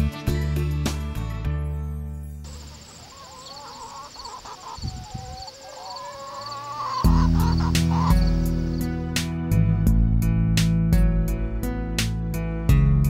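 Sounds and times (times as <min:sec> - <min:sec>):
chickens clucking: 0:02.5 - 0:08.9.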